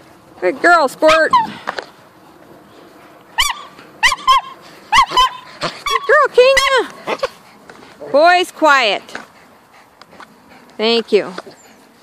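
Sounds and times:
dogs barking and yipping: 0.9 - 1.9, 2.8 - 7.9.

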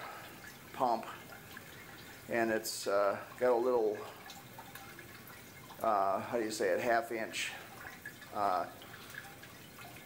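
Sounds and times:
water spraying and dripping: 0.0 - 10.0.

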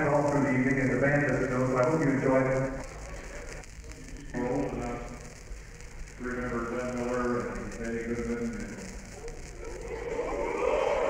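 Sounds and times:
record surface crackle and hiss: 0.0 - 11.0
man speaking: 4.0 - 5.2, 6.2 - 8.9.

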